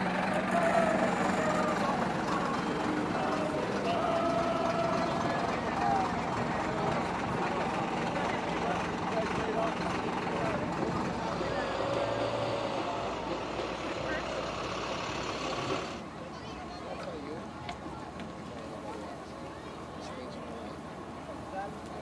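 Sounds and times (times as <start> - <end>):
bus engine running: 0.0 - 16.6
people talking: 0.0 - 22.0.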